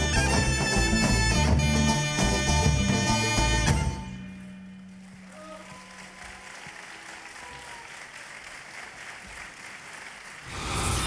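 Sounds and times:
audience applause: 4.8 - 11.0.

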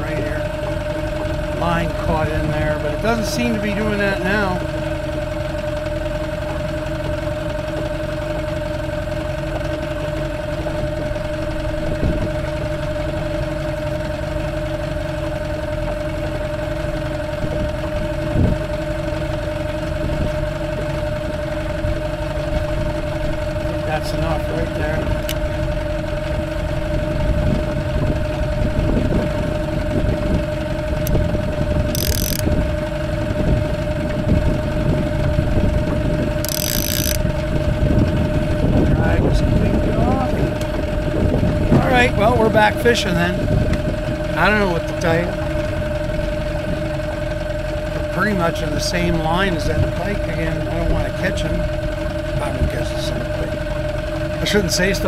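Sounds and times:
outboard motor humming: 0.0 - 55.0.

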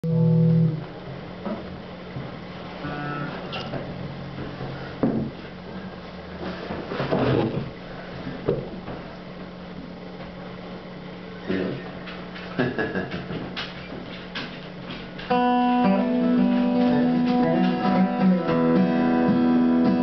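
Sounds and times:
electric bass note: 0.0 - 0.9, 2.8 - 3.6, 15.3 - 20.0
guitar plucks: 0.0 - 0.9, 15.3 - 20.0
low hum: 0.0 - 2.2
knocks of guitar handling: 5.0 - 5.4.

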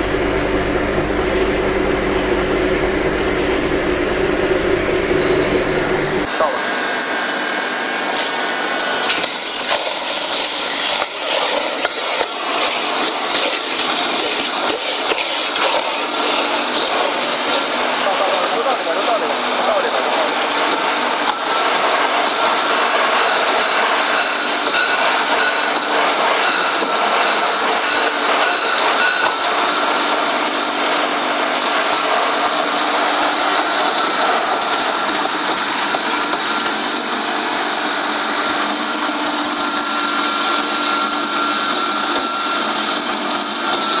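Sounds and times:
mill grinding with steady whine: 0.0 - 44.0.

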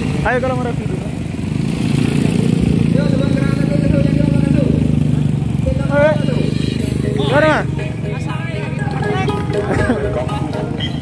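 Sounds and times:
motorcycle engines running: 0.0 - 11.0
people calling out: 5.9 - 10.5.

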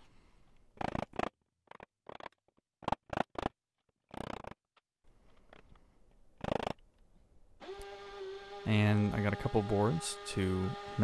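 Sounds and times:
hand saw cutting wood: 7.6 - 11.0.

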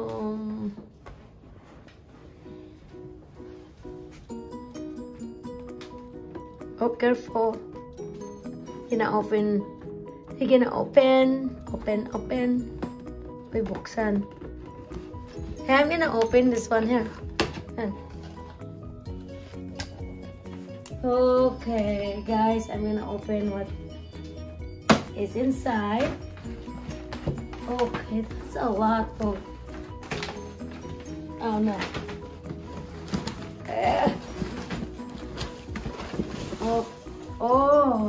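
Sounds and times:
background music with held notes: 0.0 - 38.0
cardboard box and tissue paper handled: 25.4 - 38.0.

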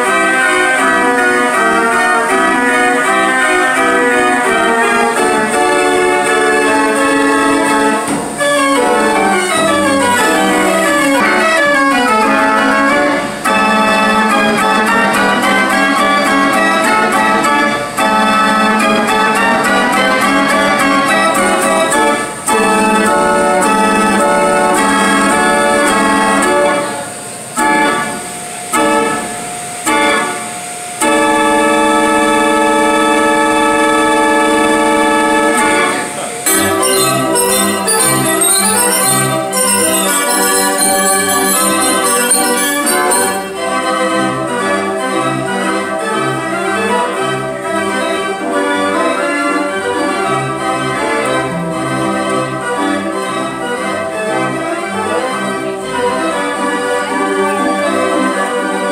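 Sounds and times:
carousel band organ playing: 0.0 - 58.9
person talking: 36.1 - 39.0.

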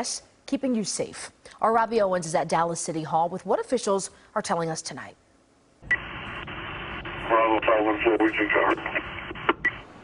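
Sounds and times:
radio hiss: 5.9 - 9.9
voice over two-way radio: 7.2 - 9.3
radio click: 7.2 - 9.8.

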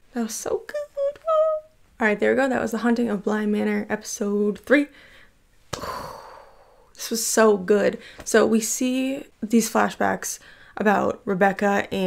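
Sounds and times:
woman sighing: 5.7 - 6.9.

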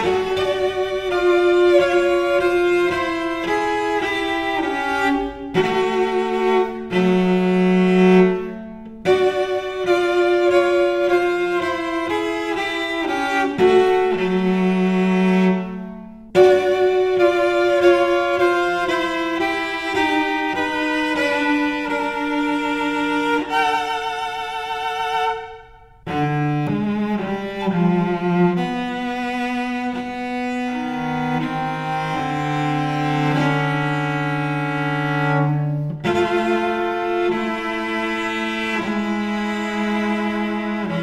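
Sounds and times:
bowed cello: 0.0 - 41.0.

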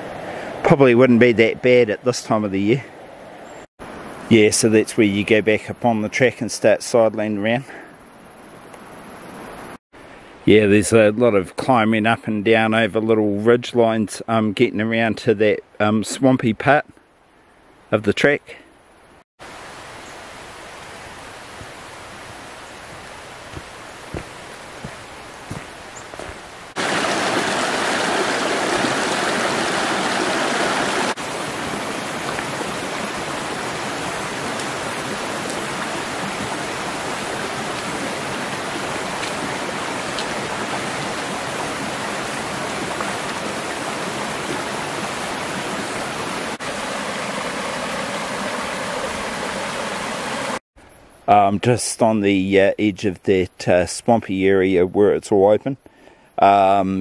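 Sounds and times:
stream rushing over stones: 19.4 - 50.6
footsteps on track: 21.6 - 26.6.

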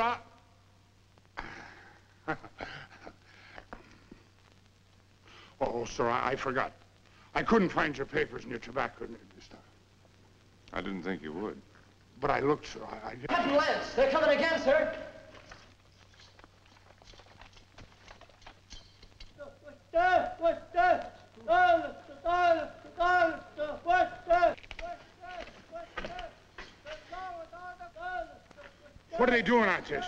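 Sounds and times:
faint scattered clicks: 8.7 - 10.9, 15.3 - 19.6, 24.5 - 29.1.

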